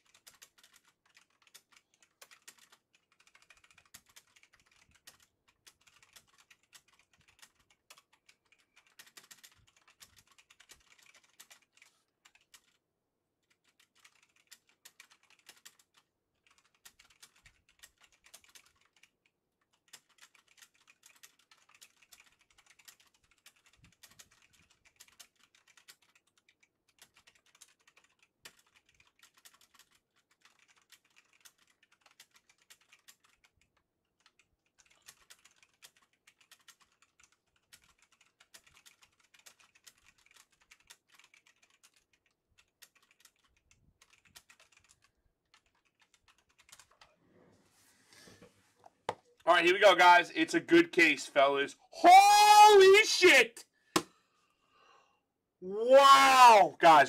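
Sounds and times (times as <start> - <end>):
faint rapid clicking: 0.0 - 12.8, 13.4 - 47.2.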